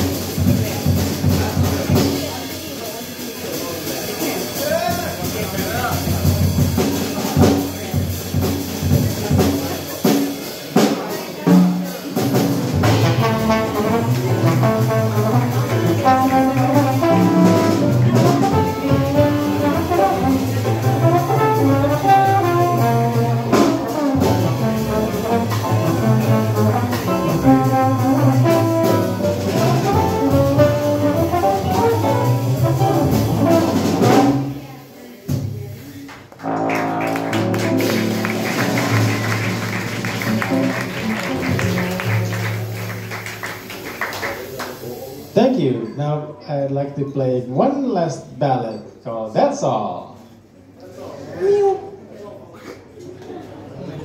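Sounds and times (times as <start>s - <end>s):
live jazz band playing: 0.0s - 46.0s
trombone lead: 12.1s - 34.7s, 36.4s - 43.8s.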